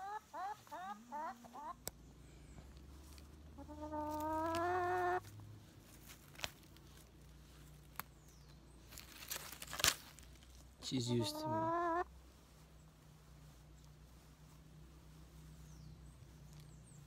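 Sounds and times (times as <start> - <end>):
hen calling: 0.0 - 5.3, 10.8 - 12.2
rustle of handling: 0.6 - 17.0.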